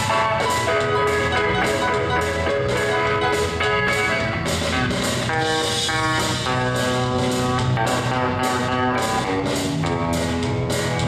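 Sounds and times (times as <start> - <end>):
drums keeping a beat: 0.0 - 11.0
electric guitar: 0.0 - 11.0.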